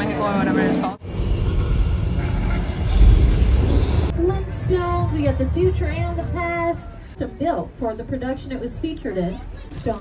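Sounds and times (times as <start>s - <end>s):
booming soundtrack: 1.0s - 6.4s
tram running: 1.0s - 6.8s.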